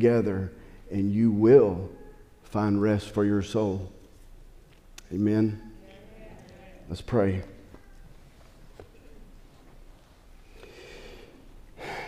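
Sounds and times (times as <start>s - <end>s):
man breathing close to microphone: 10.4s - 12.0s.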